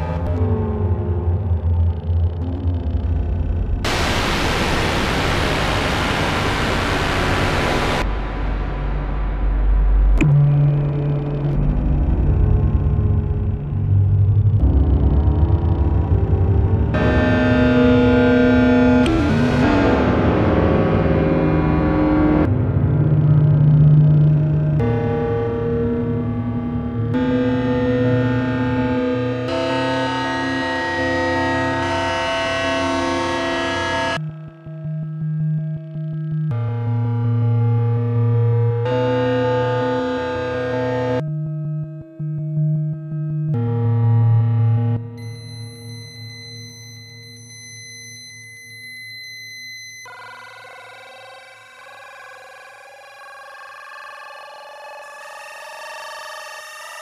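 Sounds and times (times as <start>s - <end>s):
buzzy synthesizer chords: 0.0s - 34.2s
deep rumble: 0.6s - 16.9s.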